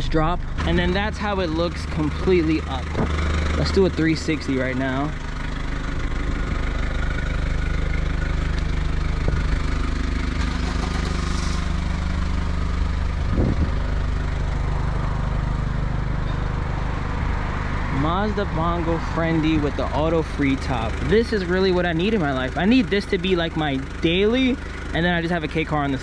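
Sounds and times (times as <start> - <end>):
diesel engine idling: 0.0 - 26.0.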